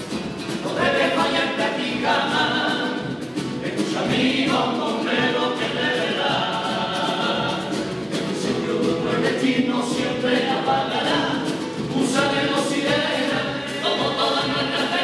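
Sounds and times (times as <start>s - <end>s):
chorus singing in harmony: 0.0s - 15.0s.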